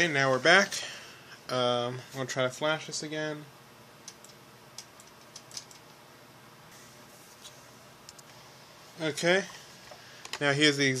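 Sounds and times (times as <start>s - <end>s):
low steady room hiss: 0.0s - 11.0s.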